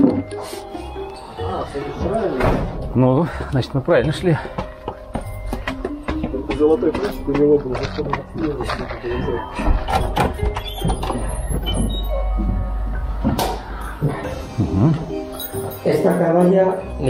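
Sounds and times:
music: 0.0s - 17.0s
footsteps on a staircase: 3.3s - 14.4s, 15.0s - 16.2s.

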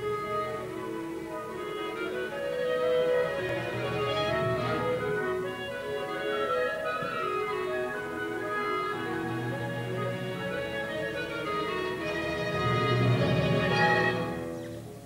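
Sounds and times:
orchestra playing held notes: 0.0s - 15.0s.

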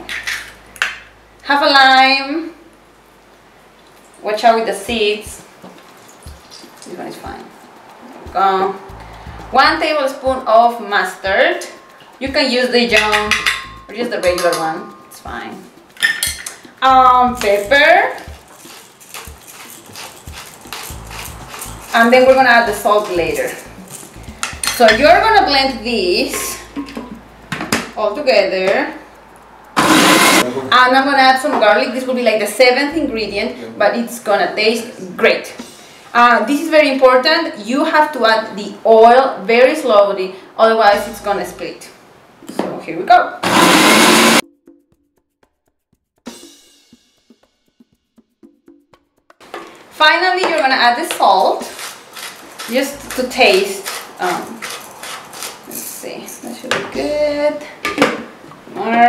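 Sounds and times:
pepper mill grinding: 16.0s - 27.6s, 29.8s - 30.5s, 43.4s - 44.4s, 51.0s - 56.0s
blender motor running: 29.8s - 30.4s, 43.4s - 44.4s.

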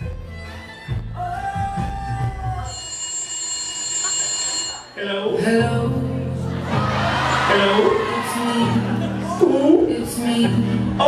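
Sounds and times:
telephone ringing: 2.6s - 5.5s.

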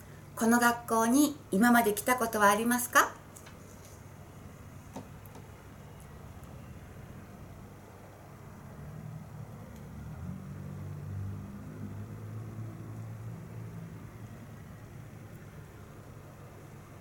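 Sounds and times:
faint room hiss: 0.0s - 17.0s.

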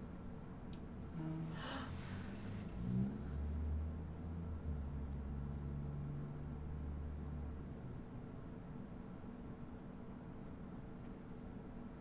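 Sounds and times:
low soundtrack rumble: 0.8s - 6.7s.

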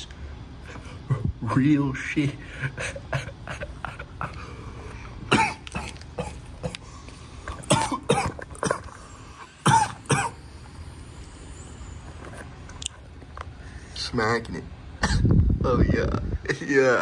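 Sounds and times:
person coughing: 5.3s - 6.9s, 7.6s - 9.0s, 9.6s - 10.4s, 15.0s - 15.3s.

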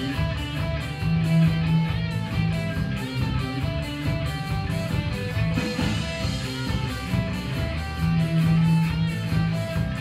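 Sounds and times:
bass line: 0.0s - 10.0s
drums: 0.0s - 10.0s
electric guitar: 0.0s - 10.0s.

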